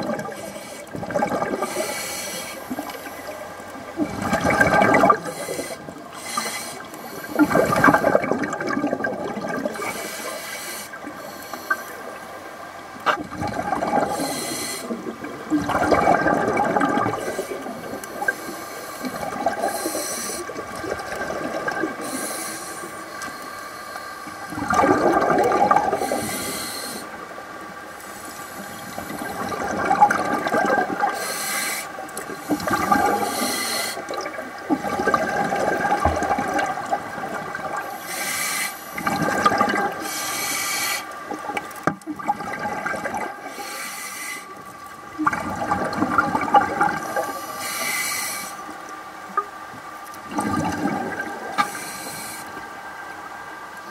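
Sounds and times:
underwater breathing bubbles: 0:00.0 - 0:12.5, 0:13.1 - 0:49.4, 0:50.1 - 0:52.8
faint steady whine: 0:00.0 - 0:53.9.

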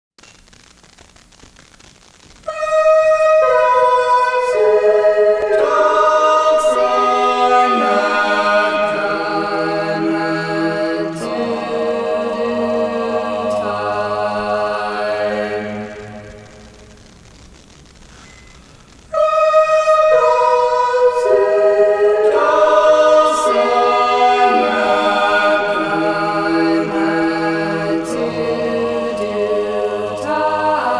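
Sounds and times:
faint hiss: 0:00.2 - 0:30.9
a cappella voices singing: 0:02.5 - 0:16.7, 0:19.1 - 0:30.9.

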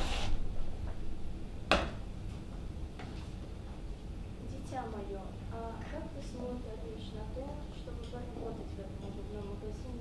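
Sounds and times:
low hall hum: 0:00.0 - 0:10.0.

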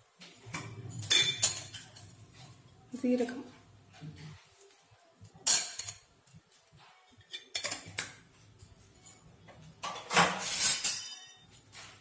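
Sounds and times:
steel utensils clattering: 0:00.7 - 0:02.6, 0:05.4 - 0:06.1, 0:08.9 - 0:11.5
metal utensil clinking: 0:00.8 - 0:02.6, 0:09.8 - 0:11.4.

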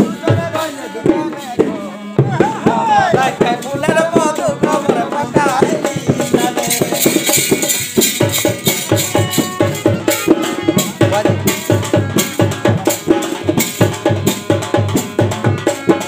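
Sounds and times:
man singing folk song: 0:00.0 - 0:07.6
bright high-pitched percussion: 0:00.0 - 0:16.0
hand drums: 0:00.0 - 0:16.0
harmonium: 0:00.0 - 0:16.0.

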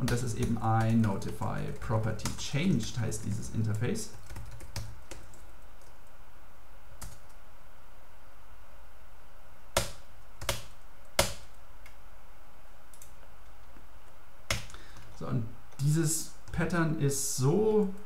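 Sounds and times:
low background noise: 0:00.0 - 0:18.0.

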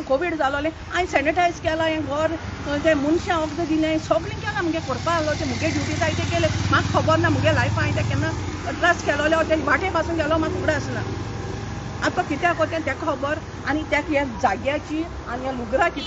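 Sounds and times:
woman talking: 0:00.0 - 0:11.2, 0:12.0 - 0:16.0.

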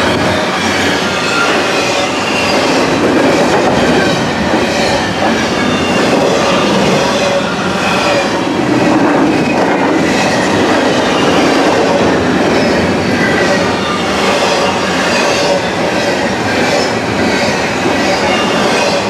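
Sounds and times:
train wheels rolling on rail: 0:00.0 - 0:19.0.

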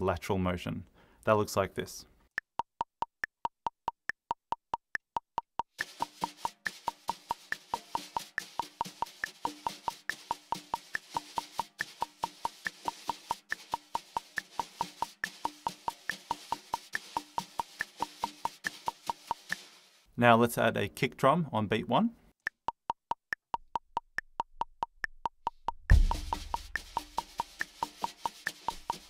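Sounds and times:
metronome ticking: 0:02.3 - 0:19.6, 0:22.4 - 0:29.0
wire brushes on snare drum: 0:05.7 - 0:20.1, 0:25.9 - 0:29.0.

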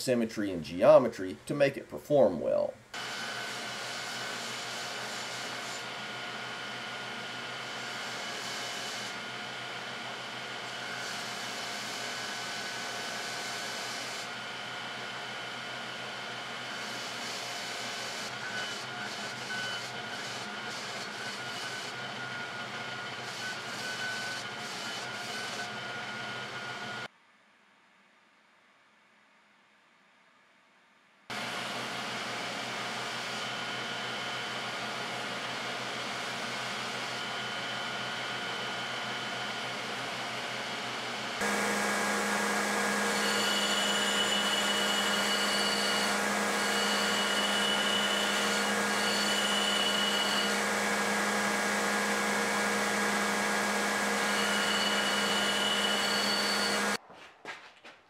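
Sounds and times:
belt grinder grinding metal: 0:16.8 - 0:26.1, 0:41.4 - 0:57.0.

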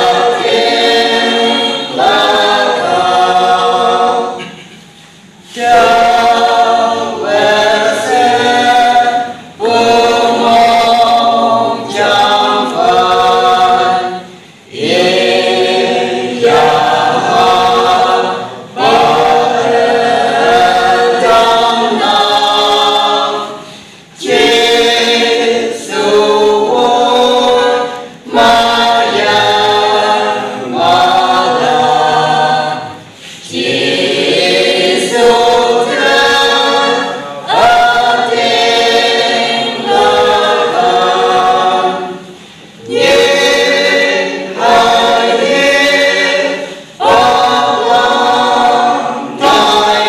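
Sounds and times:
mixed choir singing a hymn: 0:00.0 - 0:50.0.

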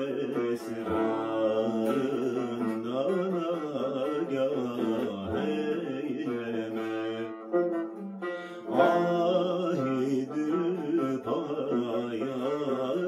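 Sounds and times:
plucked lute: 0:00.0 - 0:13.0.

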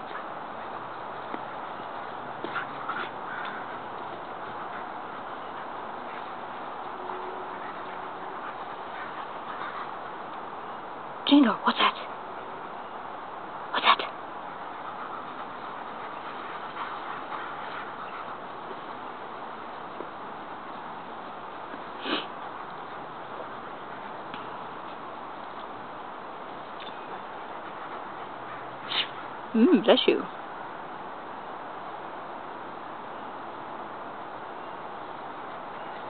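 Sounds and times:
faint background noise: 0:00.0 - 0:36.0
steady outdoor hiss: 0:00.0 - 0:36.0
short high dog calls: 0:28.8 - 0:29.3.

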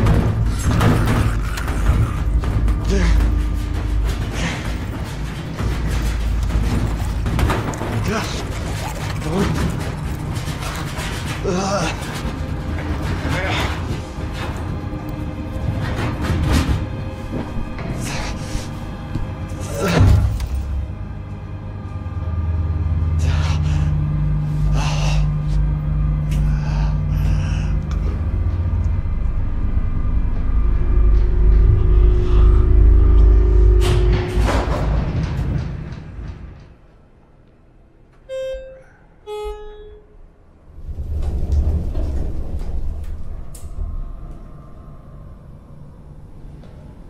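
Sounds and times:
low droning film score: 0:00.0 - 0:47.0
low rumbling noise: 0:00.0 - 0:47.0
short high tones: 0:38.3 - 0:40.2.

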